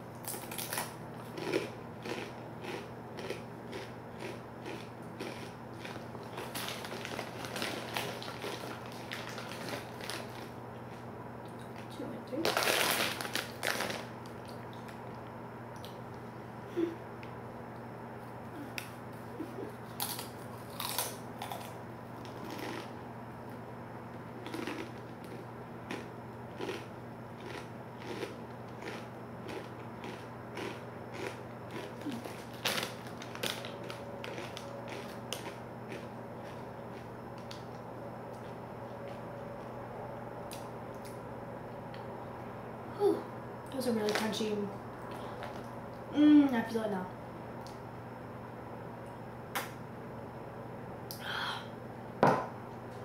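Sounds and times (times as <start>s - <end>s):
tortilla chips crunching while chewed: 0.1s - 15.0s, 19.8s - 23.0s, 24.4s - 37.8s.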